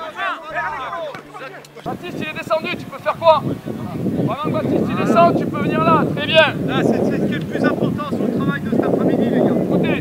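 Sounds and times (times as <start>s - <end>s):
men shouting calls: 0.0s - 10.0s.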